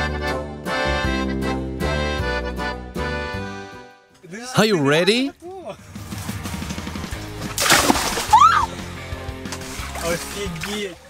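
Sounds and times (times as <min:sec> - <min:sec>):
background music: 0:00.0 - 0:11.0
water sloshing: 0:05.8 - 0:11.0
loud water splash: 0:07.0 - 0:11.0.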